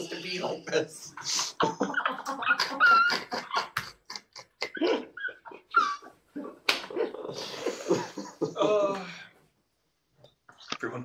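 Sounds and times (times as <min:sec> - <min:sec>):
group of people laughing: 0:01.2 - 0:09.2
high squeaky laugh: 0:01.7 - 0:08.0.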